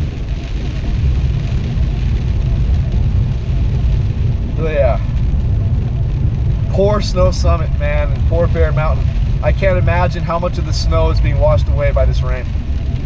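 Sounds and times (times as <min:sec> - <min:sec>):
car driving on wet road: 0:00.0 - 0:13.0
rain noise: 0:00.0 - 0:13.0.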